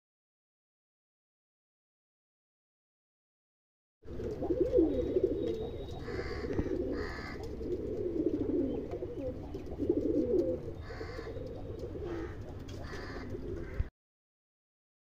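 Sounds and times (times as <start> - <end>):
pigeon cooing: 4.1 - 13.9
short high-pitched pigeon sounds: 4.1 - 13.9.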